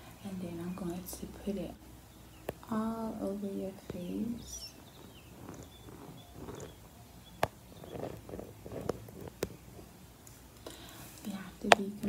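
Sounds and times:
fingertips rubbing on camera lens: 0:04.8 - 0:09.9.

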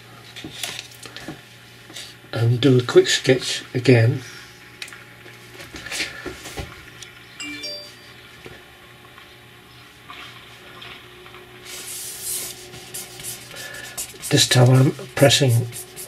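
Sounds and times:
pen nib scratching paper: 0:12.3 - 0:16.0.

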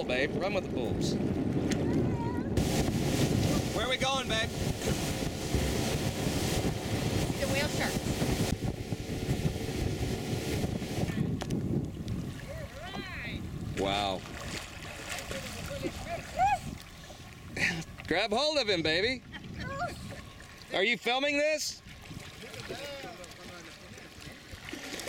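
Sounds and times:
wind buffeting microphone: 0:00.0 - 0:20.7, 0:21.8 - 0:23.5
water sloshing around boat: 0:00.4 - 0:25.0.

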